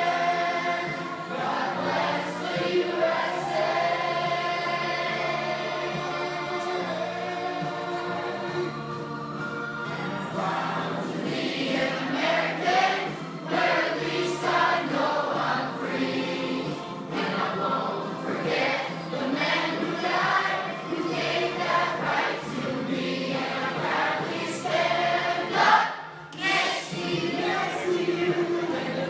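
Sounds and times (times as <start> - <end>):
choir singing: 0.0 - 29.0.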